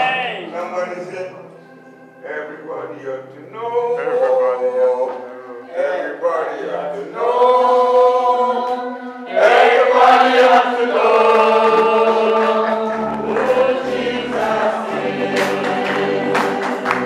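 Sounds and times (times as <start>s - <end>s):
congregation singing a gospel song: 0.0s - 17.0s.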